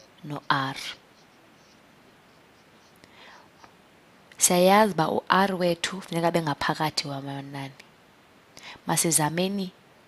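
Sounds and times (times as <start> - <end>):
faint steady hiss: 0.0 - 10.0
soft breath: 2.8 - 3.7, 8.6 - 8.8.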